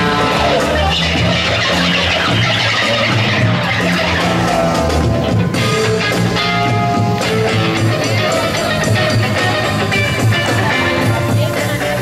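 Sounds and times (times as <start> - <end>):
electric guitar: 0.0 - 12.0
live band playing: 0.0 - 12.0
low bass: 0.0 - 12.0.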